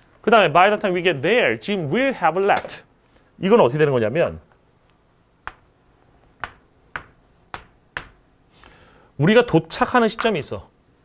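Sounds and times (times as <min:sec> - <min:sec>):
chalk tapping on chalkboard: 0:05.4 - 0:05.7, 0:06.3 - 0:08.2.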